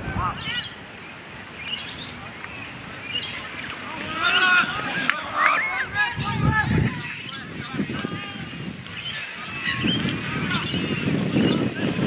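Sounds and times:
wind buffeting microphone: 0.0s - 12.0s
people shouting and calling: 2.1s - 12.0s.

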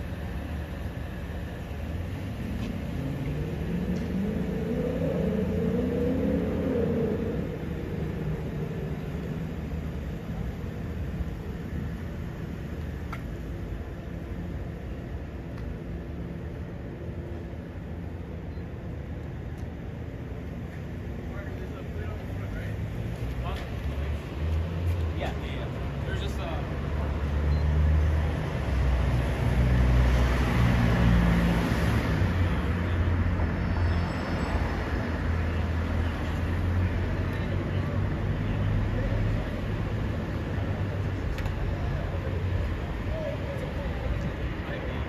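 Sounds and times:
traffic rumble: 0.0s - 45.0s
car passing by: 2.2s - 10.1s, 22.0s - 45.0s.

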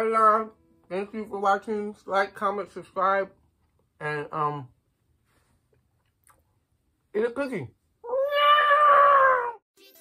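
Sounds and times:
cat meowing: 8.0s - 9.6s.

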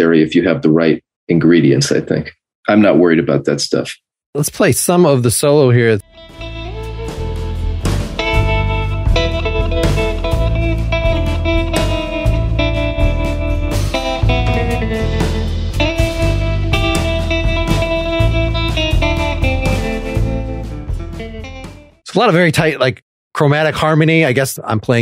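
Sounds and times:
electric guitar solo: 6.0s - 21.8s
bass guitar: 6.0s - 22.1s
drums: 6.4s - 22.8s.

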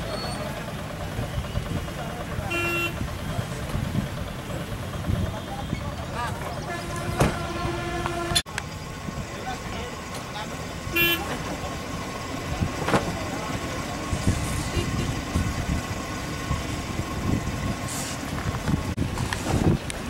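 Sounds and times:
indistinct voices: 0.0s - 16.8s
vehicle horn toot: 2.5s - 3.0s, 6.6s - 8.4s, 10.9s - 11.4s.

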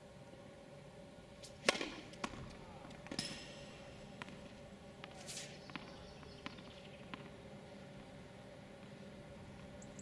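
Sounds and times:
tennis ball bouncing on hard court: 1.6s - 3.4s, 4.1s - 7.4s.

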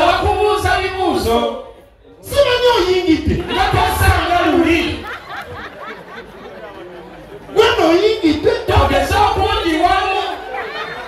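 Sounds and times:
loud voice through microphone: 0.0s - 5.6s, 7.4s - 11.0s
murmur of voices: 0.0s - 11.0s.

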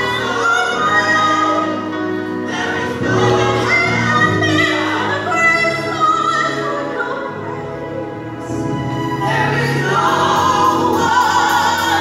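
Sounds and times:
woman singing gospel: 0.0s - 7.3s, 9.2s - 12.0s.

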